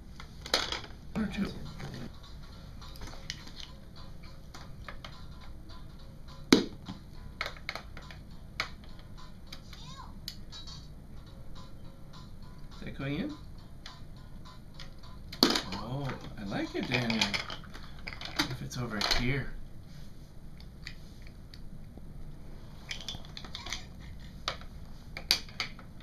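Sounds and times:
plastic toy coins clicking: 0:16.8 - 0:19.2.

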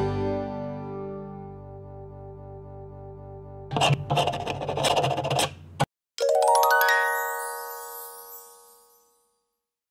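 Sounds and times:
bell-like chime run: 0:06.2 - 0:09.8.

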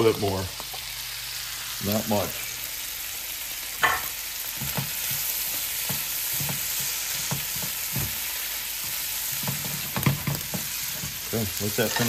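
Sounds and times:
meat sizzling in butter: 0:00.0 - 0:12.0.

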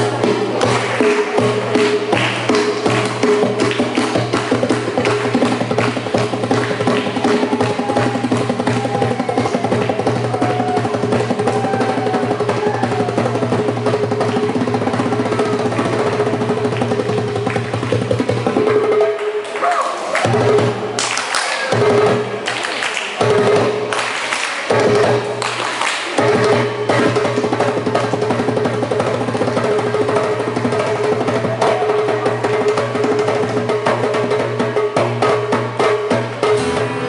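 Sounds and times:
hand drum played rapidly: 0:00.0 - 0:19.4, 0:24.7 - 0:37.0.

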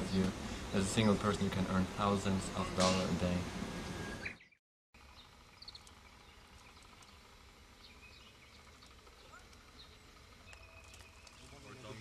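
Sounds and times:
steady low hum: 0:00.0 - 0:04.4, 0:05.0 - 0:12.0
distant birds chirping: 0:00.0 - 0:12.0.

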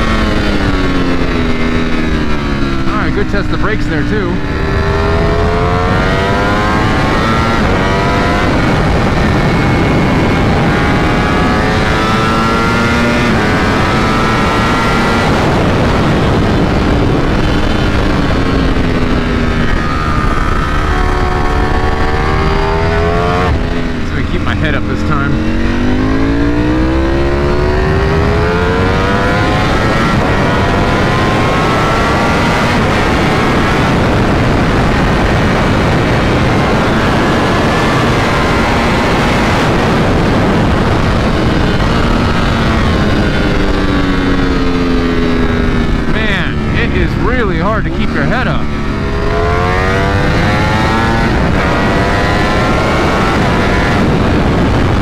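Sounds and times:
motorcycle engine accelerating: 0:00.0 - 0:55.0
wind rush on microphone: 0:00.0 - 0:55.0.

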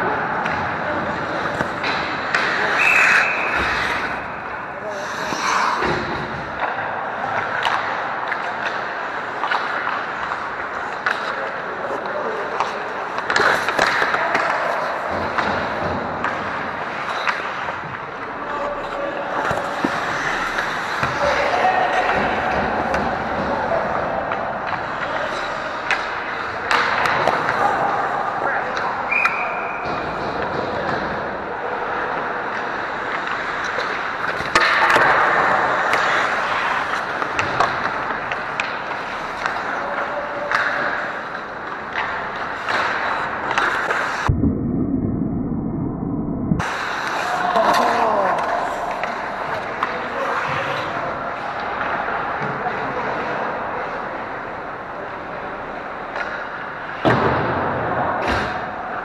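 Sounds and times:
hockey sticks and puck clacking: 0:00.0 - 0:44.3, 0:46.6 - 0:59.0
skate blades scraping ice: 0:01.1 - 0:06.6, 0:08.4 - 0:17.8, 0:18.8 - 0:21.4, 0:32.7 - 0:39.8, 0:40.9 - 0:44.2.

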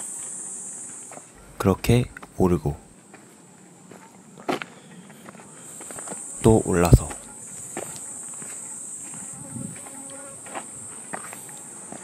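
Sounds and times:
insects droning: 0:00.0 - 0:12.0
footsteps on dirt path: 0:01.1 - 0:12.0.

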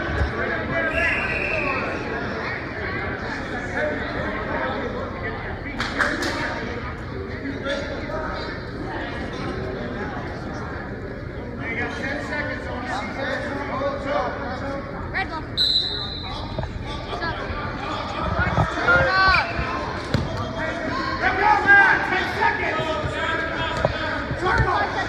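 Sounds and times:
short whistle blast: 0:15.6 - 0:16.3.

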